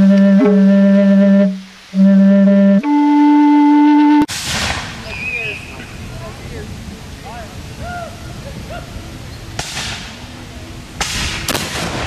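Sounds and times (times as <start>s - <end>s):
flute holding steady note: 0.0s - 4.3s.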